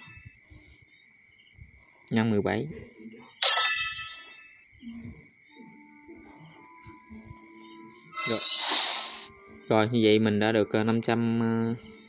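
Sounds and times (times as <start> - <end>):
bright electronic chime: 3.4 - 4.7, 8.1 - 9.3.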